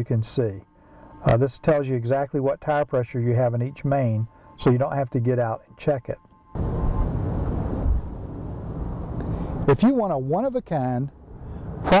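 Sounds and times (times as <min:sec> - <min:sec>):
wind buffeting microphone: 0:06.6 - 0:09.6.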